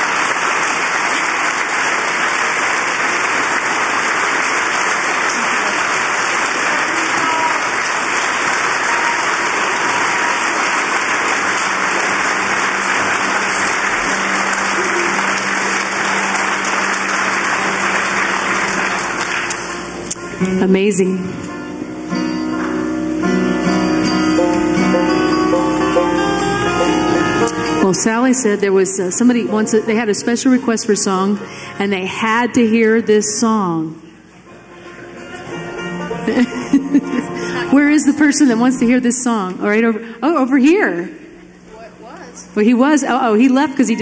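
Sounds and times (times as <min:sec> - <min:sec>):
audience applauding: 0:00.0 - 0:20.4
guitar and mandolin plucking: 0:08.9 - 0:32.1, 0:34.3 - 0:39.2.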